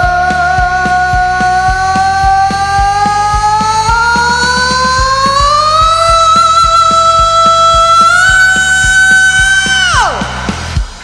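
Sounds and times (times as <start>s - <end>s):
man singing a high note: 0.0s - 10.4s
karaoke backing track: 0.0s - 11.0s
kick drum beat: 0.0s - 11.0s.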